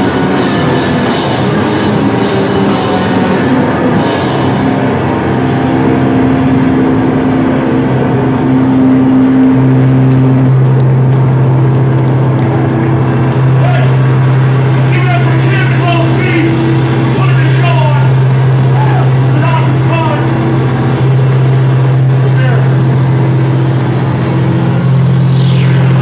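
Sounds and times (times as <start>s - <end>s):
guitar and bass amplifier drone: 0.0s - 26.0s.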